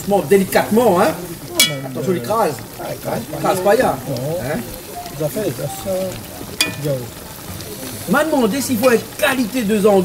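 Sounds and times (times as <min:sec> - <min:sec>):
low voices murmuring: 0:00.0 - 0:10.0
sausage sizzling in a pot: 0:00.0 - 0:10.0
metal spoon stirring: 0:06.6 - 0:07.0.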